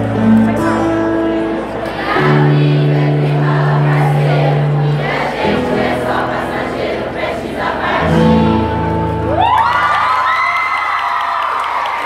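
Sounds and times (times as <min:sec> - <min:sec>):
teenagers whooping and cheering: 0:09.2 - 0:12.0.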